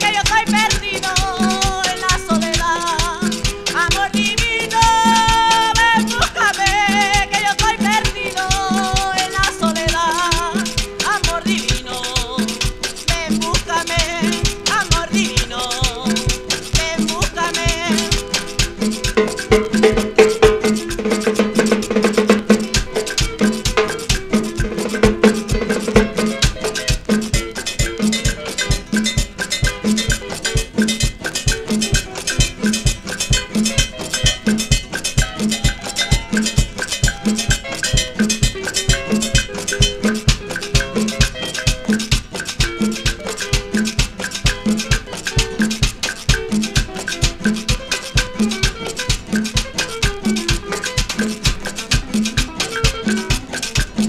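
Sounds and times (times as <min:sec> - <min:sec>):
latin dance band music: 0:00.0 - 0:54.0.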